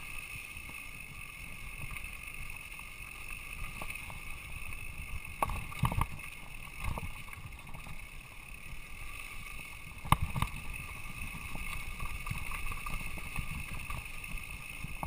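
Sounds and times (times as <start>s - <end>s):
bike tyres rumbling on dirt: 0.0s - 15.0s.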